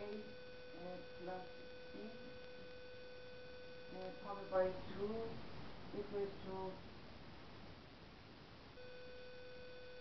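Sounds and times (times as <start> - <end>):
faint room noise: 0.0 - 10.0
steady electronic beep tone: 8.8 - 10.0.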